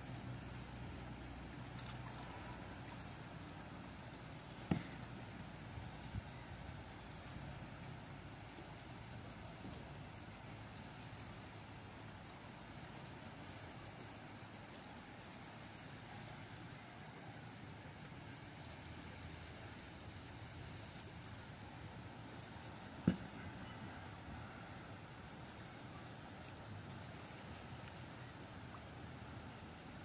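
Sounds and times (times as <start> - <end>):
shoreline ambience: 0.0 - 30.0.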